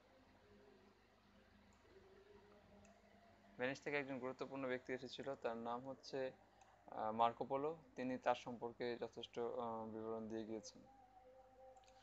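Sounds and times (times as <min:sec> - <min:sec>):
narrator talking: 0:03.6 - 0:06.3, 0:06.9 - 0:10.8.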